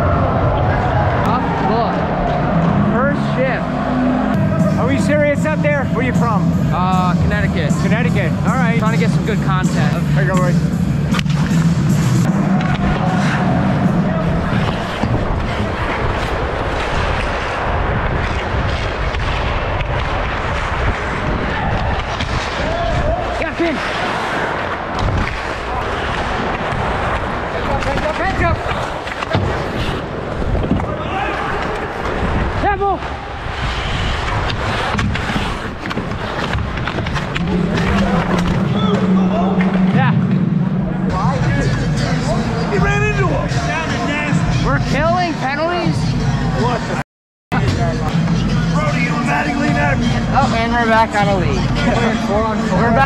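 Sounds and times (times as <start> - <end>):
steady rushing noise: 0.0 - 45.8
sticks and puck clacking: 8.8 - 32.6, 33.6 - 40.4
skate blades scraping ice: 10.9 - 32.6, 33.4 - 38.6.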